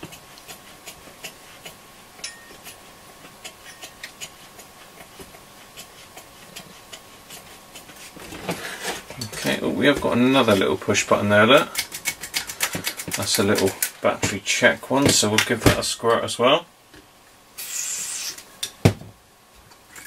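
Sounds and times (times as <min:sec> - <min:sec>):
faint steady high tone: 0:02.2 - 0:02.6
person speaking: 0:09.1 - 0:11.8, 0:13.0 - 0:16.7.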